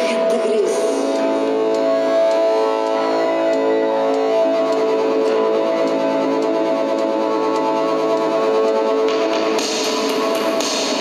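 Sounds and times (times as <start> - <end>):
electric guitar: 0.0 - 11.0
sustained synthesizer tones: 0.0 - 11.0.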